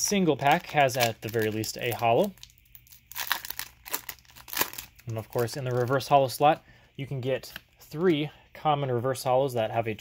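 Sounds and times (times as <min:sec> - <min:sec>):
foil wrapper crinkling: 0:00.0 - 0:06.4.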